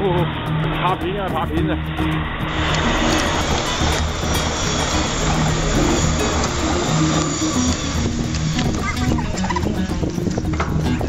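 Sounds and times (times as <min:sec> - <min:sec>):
background music: 0:00.0 - 0:11.0
electric train passing: 0:00.0 - 0:11.0.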